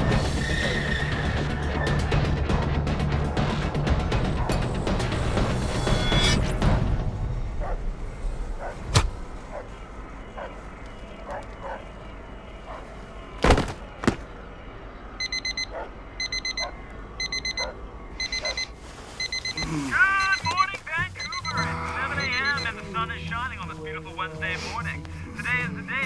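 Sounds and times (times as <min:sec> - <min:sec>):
alarm clock beeping: 0:15.2 - 0:22.8
low music: 0:16.8 - 0:26.0.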